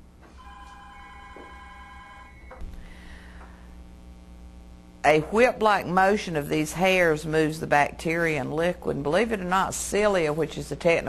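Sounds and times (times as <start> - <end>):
electronic ringing tone: 0.4 - 2.6.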